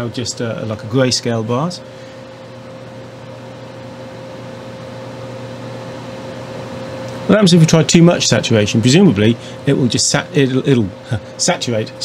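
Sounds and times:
equipment hum with steady tone: 0.0s - 12.0s.

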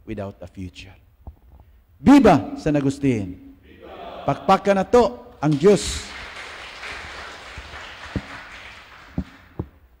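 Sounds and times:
congregation applauding: 5.4s - 9.8s.

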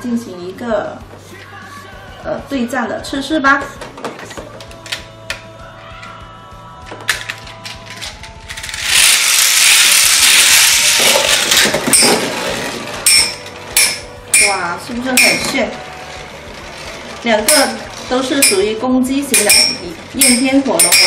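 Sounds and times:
spinning tops clacking together: 6.9s - 14.6s, 15.2s - 21.0s
toy spinning tops whirring: 7.3s - 14.6s.

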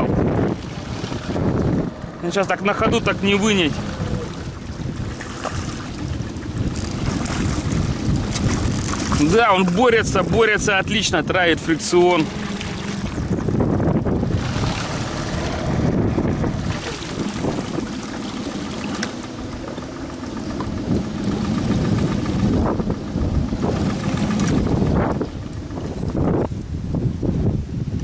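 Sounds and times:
outboard motor running: 0.0s - 28.0s.

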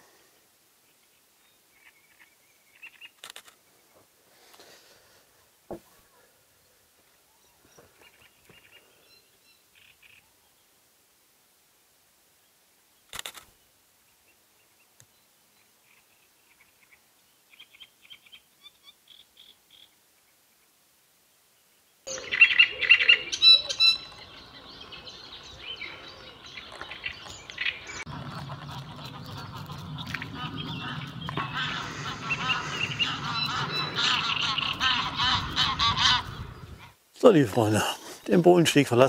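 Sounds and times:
small birds calling and singing: 0.8s - 3.2s, 7.0s - 10.7s, 13.6s - 20.7s, 21.6s - 37.0s.

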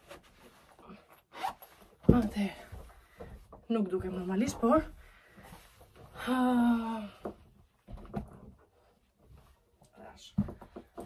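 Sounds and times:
boot zipper zipping: 1.3s - 1.8s.

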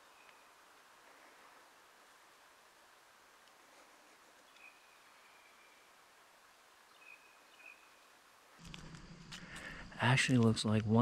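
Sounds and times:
faint hiss: 0.0s - 11.0s.

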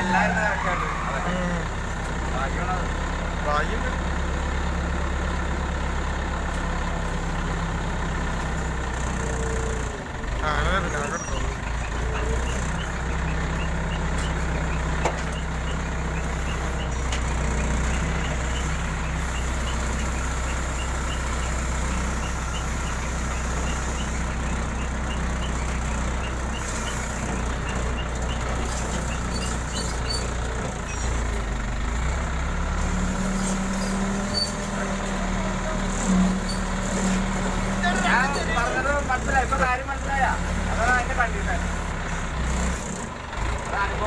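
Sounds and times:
crane engine and hydraulics running: 0.0s - 44.0s.

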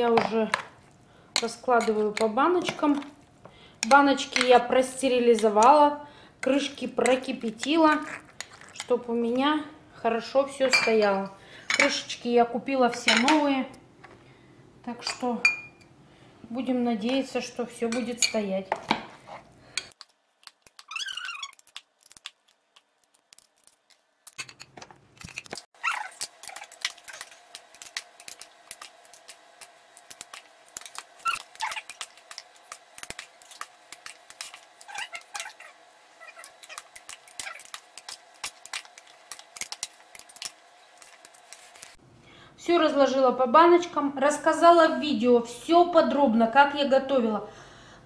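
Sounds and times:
high rising squeak: 20.8s - 21.8s, 25.8s - 27.3s
glass jars and spoon clinking: 25.3s - 42.0s.

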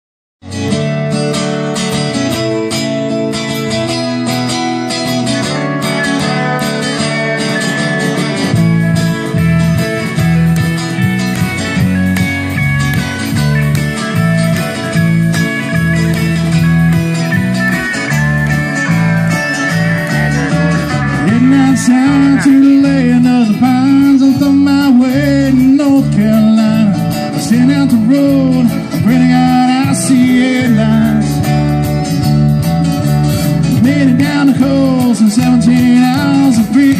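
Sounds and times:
live country-rock band: 0.4s - 36.9s
heavy low bass: 3.9s - 36.9s.

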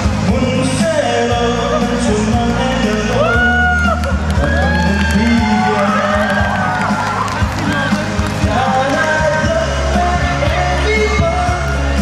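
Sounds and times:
man singing into microphone: 0.0s - 6.7s, 7.6s - 12.0s
amplified backing music: 0.0s - 12.0s
crowd cheering: 2.4s - 12.0s.

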